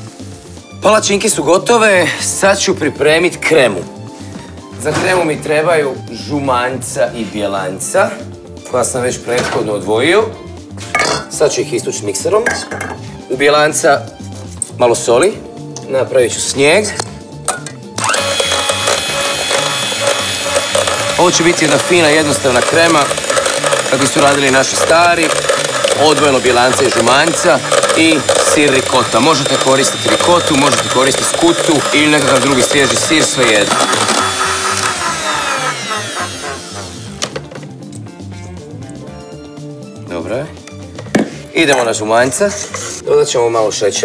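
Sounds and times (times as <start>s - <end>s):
background music with bass line: 0.0s - 43.1s
electric hand mixer whisking: 18.0s - 37.4s.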